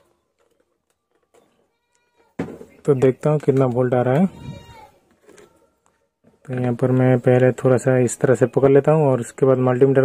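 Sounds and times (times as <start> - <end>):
man speaking: 6.4 - 10.0.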